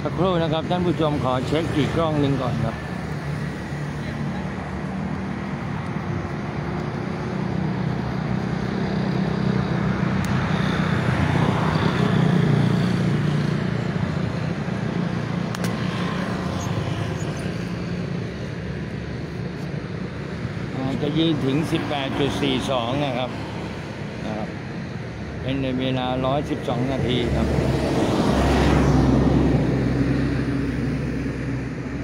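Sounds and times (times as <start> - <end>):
vehicle passing: 0.0 - 19.1, 25.4 - 32.0
street traffic: 0.0 - 32.0.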